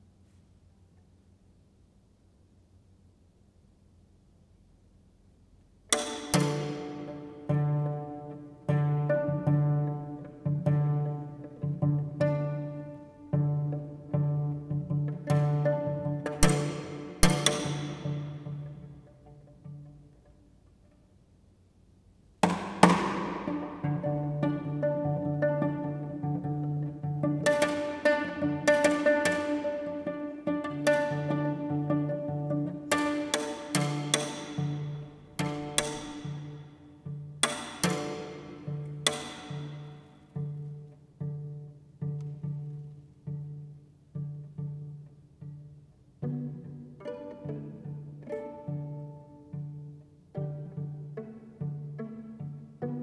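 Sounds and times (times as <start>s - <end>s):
viola and cello pizzicato: 5.4s - 53.0s.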